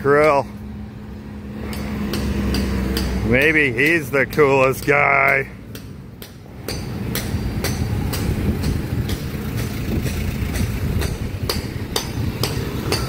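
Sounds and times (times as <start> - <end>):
engine rumbling: 0.0 - 13.0
sharp knocks: 1.6 - 13.0.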